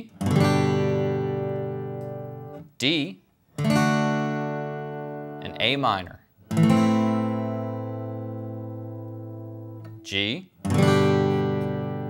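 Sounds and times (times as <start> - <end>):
acoustic guitar chord ringing: 0.2 - 2.6, 3.6 - 12.0.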